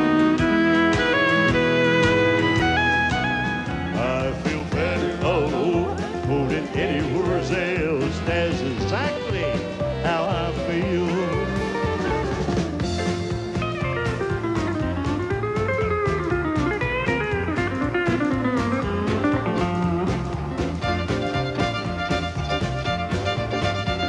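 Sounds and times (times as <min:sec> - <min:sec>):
pedal steel guitar sliding notes: 0:00.0 - 0:04.2
country backing band: 0:00.0 - 0:24.0.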